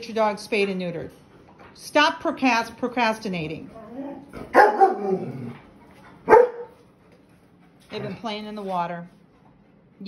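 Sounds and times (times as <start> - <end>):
puppy barking: 4.1 - 5.5, 6.2 - 6.8.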